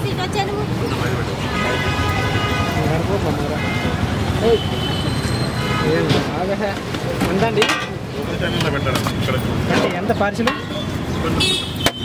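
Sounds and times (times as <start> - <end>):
indistinct chatter: 0.0 - 12.0
road traffic rumbling: 0.0 - 12.0
vehicle horns honking: 1.4 - 6.3, 10.5 - 12.0.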